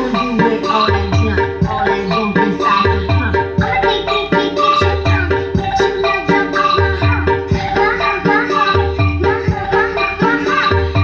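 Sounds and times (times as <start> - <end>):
song over loudspeakers: 0.0 - 11.0.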